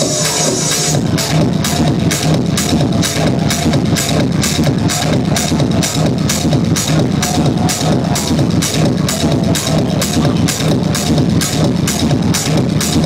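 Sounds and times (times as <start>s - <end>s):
loud techno with heavy bass: 0.0s - 13.0s.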